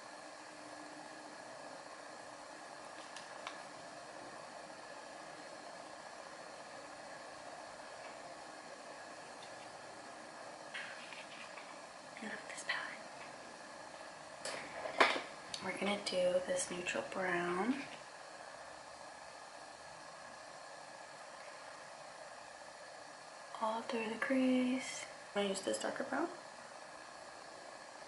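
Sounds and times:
low steady hiss: 0:00.0 - 0:28.0.

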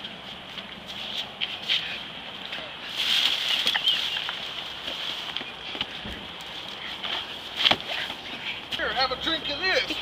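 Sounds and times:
people scuffling on pavement: 0:00.0 - 0:10.0.

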